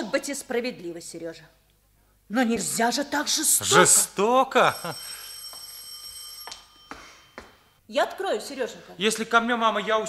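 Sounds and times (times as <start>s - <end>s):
electric doorbell ringing: 4.7s - 7.7s.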